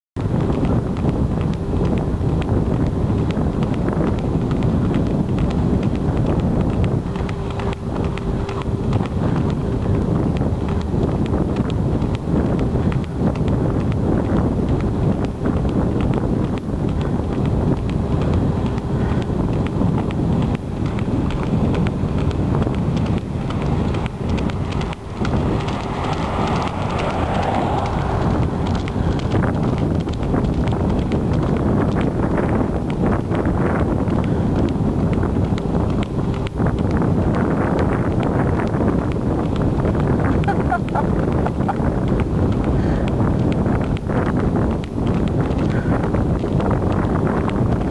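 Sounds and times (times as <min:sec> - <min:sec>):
wind buffeting microphone: 0:00.2 - 0:47.9
wheelchair motor whine: 0:00.4 - 0:38.8.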